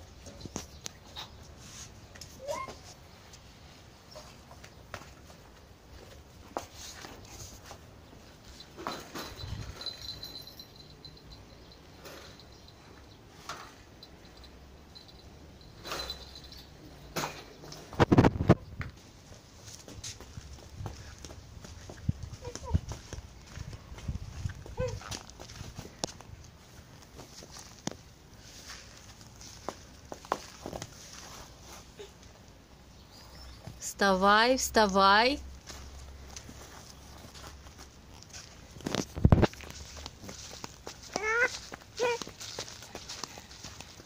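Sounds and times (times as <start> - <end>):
toddler high vocal sound: 2.4 - 2.8, 24.7 - 25.1, 41.1 - 42.3
footsteps on dirt path: 18.0 - 32.0, 35.5 - 44.0.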